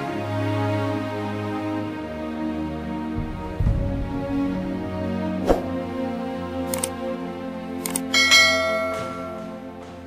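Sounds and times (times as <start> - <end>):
background music: 0.0 - 10.0
bright bell ding: 8.2 - 9.5.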